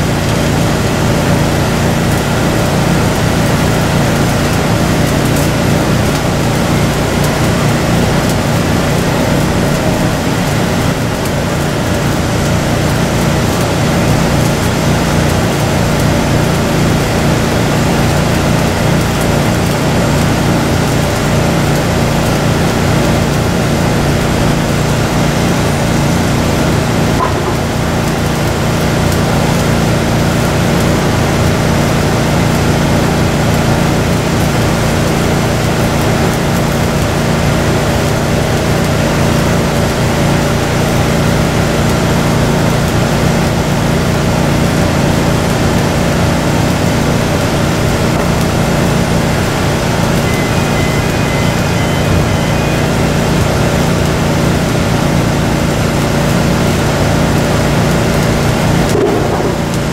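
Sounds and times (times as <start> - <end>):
engine droning: 0.0 - 59.9
welding arc crackling: 0.0 - 59.9.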